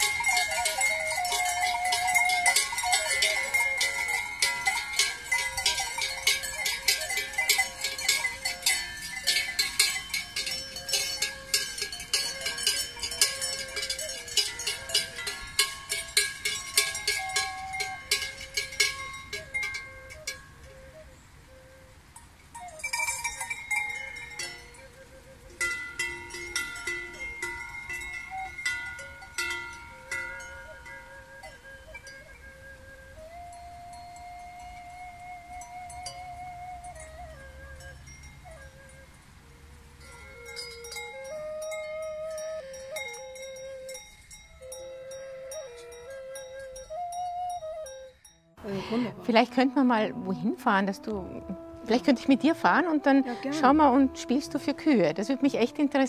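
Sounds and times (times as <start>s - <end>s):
cowbells clanging: 0.0s - 20.9s, 22.2s - 32.5s, 33.1s - 56.0s.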